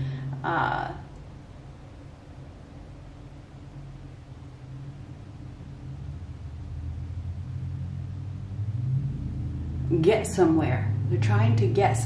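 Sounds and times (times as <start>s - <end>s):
vehicle engine rumble: 0.0s - 12.0s.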